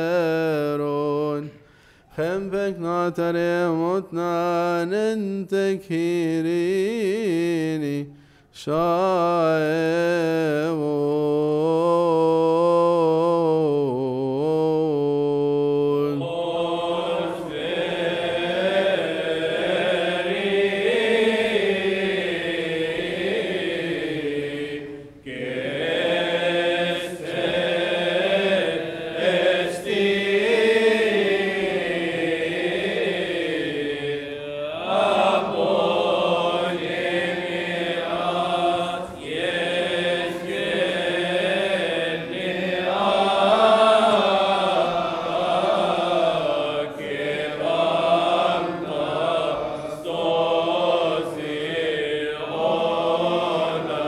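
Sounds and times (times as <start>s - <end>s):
voices chanting slow melody: 8.8s - 54.0s.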